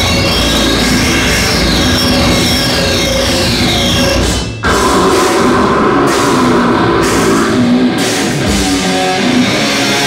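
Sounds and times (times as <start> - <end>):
drum kit: 0.0 - 10.0
electric guitars: 0.0 - 10.0
heavy metal band playing live: 0.0 - 10.0.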